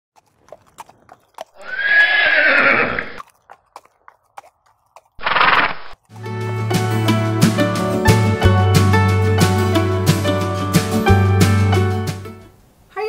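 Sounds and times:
horse whinnying: 1.5s - 3.2s, 5.2s - 6.0s.

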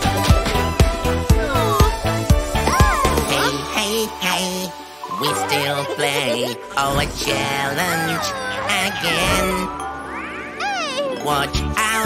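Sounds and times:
background music: 0.0s - 12.0s
cartoon character voices exclaiming: 5.2s - 6.6s, 7.6s - 9.7s, 10.4s - 11.6s.

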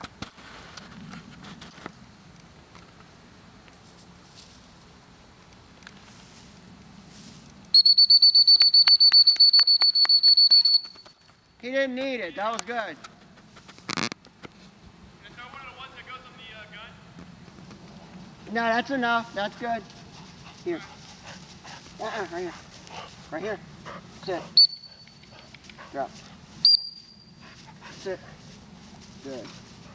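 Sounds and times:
faint outdoor background: 0.0s - 29.9s
trilling dog whistle: 7.8s - 11.2s, 24.6s - 25.4s, 26.6s - 27.4s.

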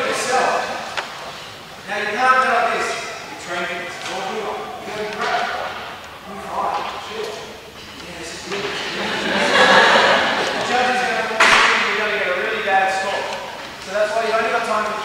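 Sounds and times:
indistinct speech echoing: 0.0s - 15.0s.

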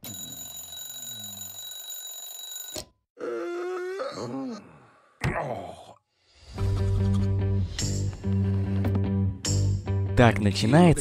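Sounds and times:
alarm clock bells ringing: 0.0s - 2.8s
cartoon character groaning: 3.2s - 5.9s.

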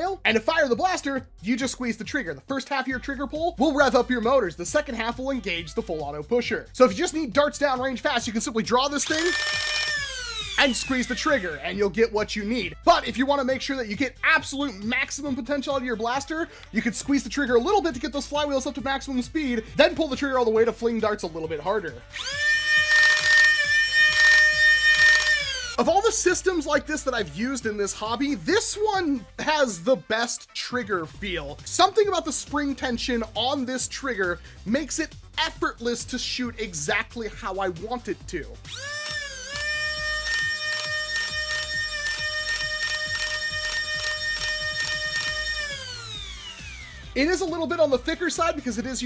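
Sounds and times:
flywheel motors whining: 9.0s - 11.5s, 22.1s - 25.8s, 38.7s - 47.2s.

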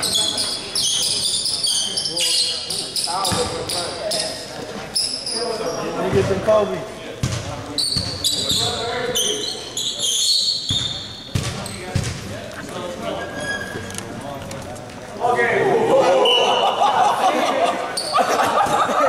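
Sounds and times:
shoes squeaking: 0.0s - 6.5s, 7.6s - 15.1s
voices in echoing hall: 0.0s - 19.0s
basketball bouncing on hardwood: 10.7s - 12.2s.

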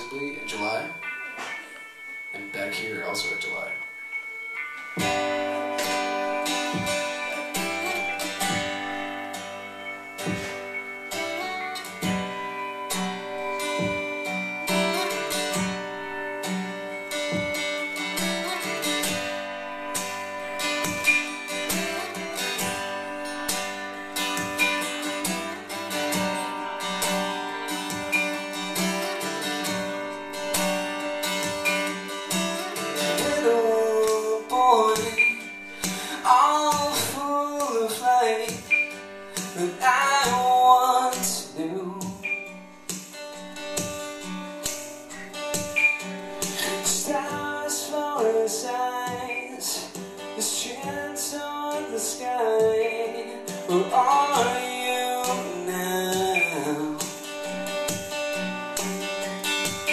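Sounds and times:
acoustic guitar strumming: 0.0s - 59.9s
person singing: 32.9s - 42.4s, 46.4s - 57.2s.

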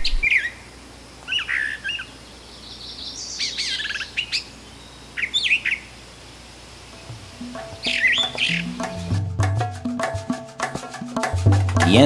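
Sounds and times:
brown thrasher singing: 7.0s - 12.0s.

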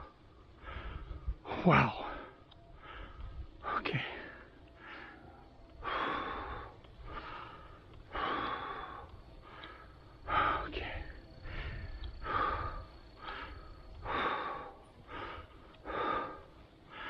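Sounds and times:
person breathing hard: 0.0s - 17.0s.

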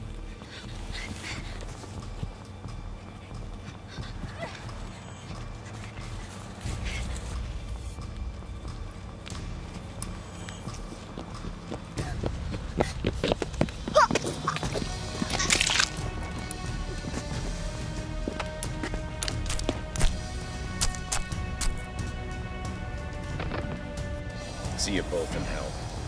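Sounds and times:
film score drone: 0.0s - 26.0s
footsteps through brush: 12.6s - 20.3s.

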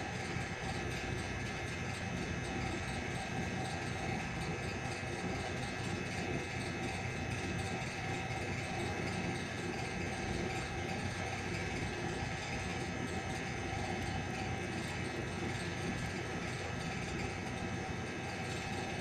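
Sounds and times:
constant hum and hiss: 0.0s - 19.0s.

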